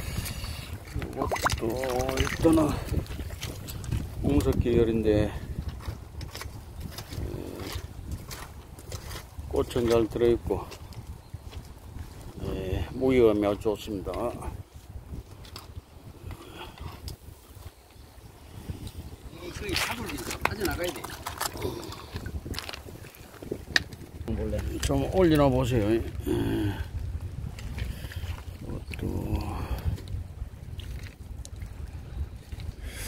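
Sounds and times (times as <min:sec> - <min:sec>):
wind buffeting microphone: 0:00.0 - 0:33.0
water sloshing: 0:00.2 - 0:03.8, 0:19.6 - 0:23.4
river stones knocking together: 0:00.9 - 0:03.6, 0:19.6 - 0:26.7.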